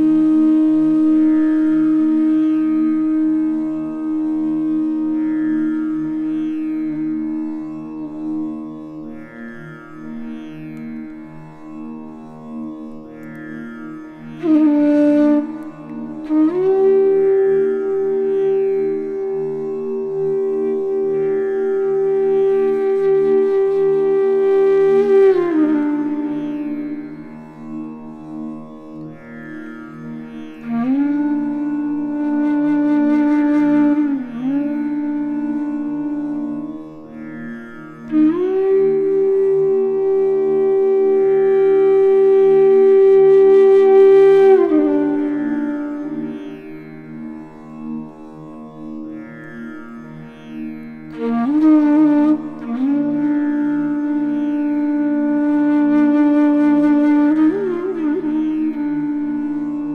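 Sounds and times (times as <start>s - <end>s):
bamboo flute playing slowly: 0.0s - 9.1s, 13.2s - 28.0s, 30.0s - 37.2s, 37.9s - 47.3s, 51.1s - 59.9s.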